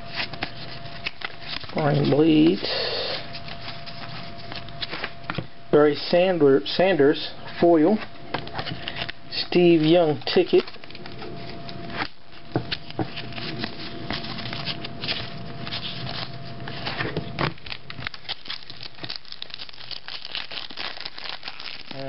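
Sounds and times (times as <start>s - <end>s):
plastic wrappers crinkling and tearing: 0.0s - 5.3s, 8.4s - 22.0s
cards being handled: 0.0s - 5.5s, 7.5s - 22.0s.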